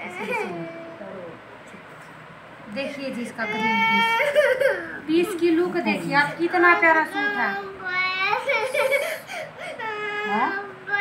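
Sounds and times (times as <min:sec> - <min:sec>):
young child whining and crying: 0:07.2 - 0:11.0.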